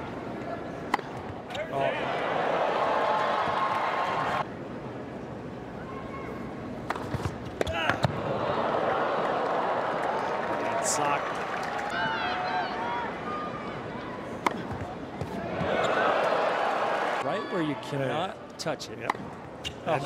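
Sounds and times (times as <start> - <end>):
tennis ball strikes: 0.9 - 1.2, 14.4 - 15.4
crowd cheering and shouting: 1.7 - 4.4, 7.8 - 14.3, 15.3 - 17.8.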